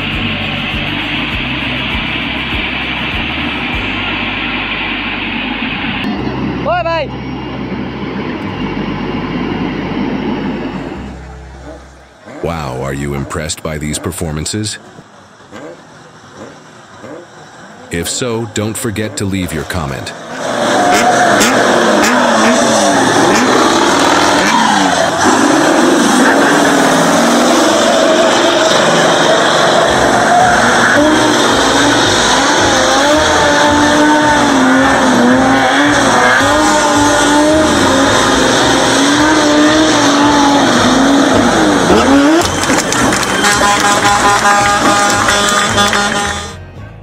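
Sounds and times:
engines revving hard: 0.0 - 46.6
tyres squealing: 20.4 - 46.1.

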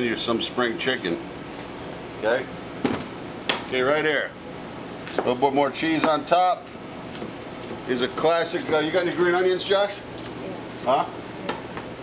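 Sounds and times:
kitchen background hiss: 0.0 - 12.0.

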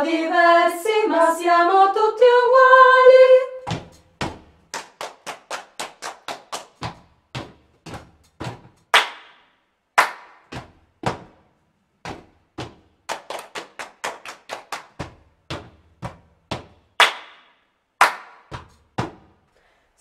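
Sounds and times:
a cappella choir singing: 0.0 - 3.7
rhythmic hand clapping: 3.8 - 11.4, 12.1 - 19.3.

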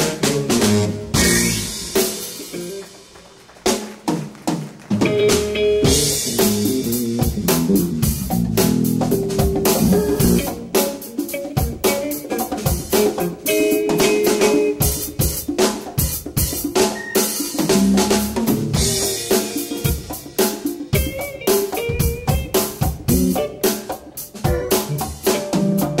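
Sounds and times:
drum hits: 0.0 - 2.8, 3.7 - 13.4
jazz-funk band playing: 0.0 - 26.0.

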